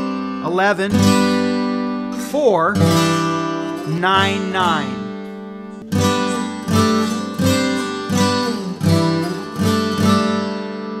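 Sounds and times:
acoustic guitar chords ringing: 0:00.0 - 0:11.0.

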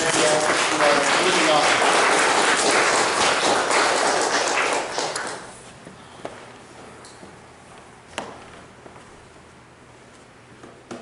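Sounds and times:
applause: 0:00.0 - 0:05.5.

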